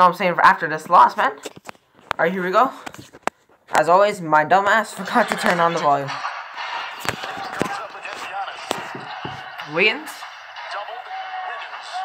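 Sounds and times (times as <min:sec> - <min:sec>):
commentator speaking: 0:00.0 - 0:01.4, 0:02.1 - 0:03.0, 0:03.7 - 0:06.2, 0:07.0 - 0:10.2
arena crowd noise: 0:04.9 - 0:12.0.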